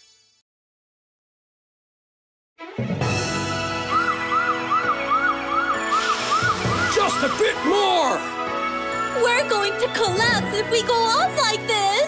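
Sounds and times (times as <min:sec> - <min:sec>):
music track: 0:02.6 - 0:12.0
cartoon siren wail: 0:03.9 - 0:07.7
hiss: 0:05.9 - 0:07.4.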